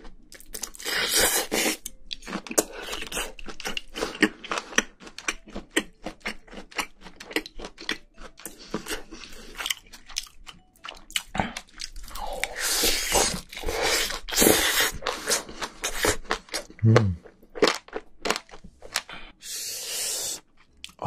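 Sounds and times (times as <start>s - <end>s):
wet chewing and crunching: 0.0s - 19.4s.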